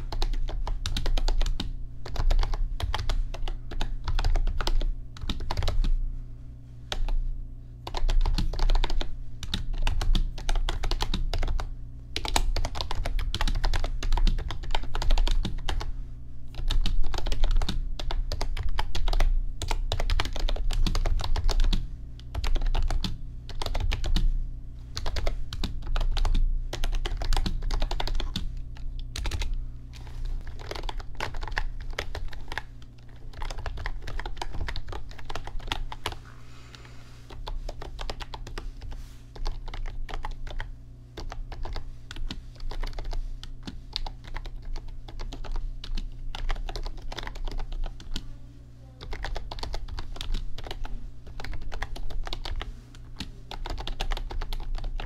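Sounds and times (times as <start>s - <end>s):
fast typing on keyboard: 0.0s - 5.9s, 7.8s - 15.9s, 16.5s - 24.3s, 25.0s - 36.2s, 37.3s - 48.2s, 49.0s - 55.0s.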